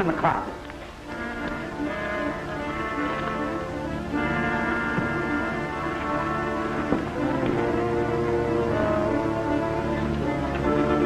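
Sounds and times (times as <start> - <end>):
orchestral music with brass: 0.0 - 11.0.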